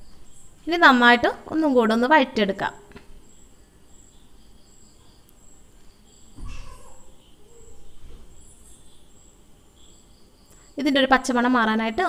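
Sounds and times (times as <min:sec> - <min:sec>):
background hiss: 0:00.0 - 0:12.0
insect chirping: 0:00.0 - 0:12.0.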